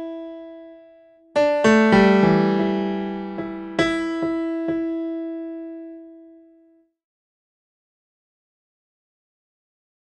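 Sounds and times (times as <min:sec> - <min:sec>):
keyboard piano notes ringing: 0:00.0 - 0:06.6.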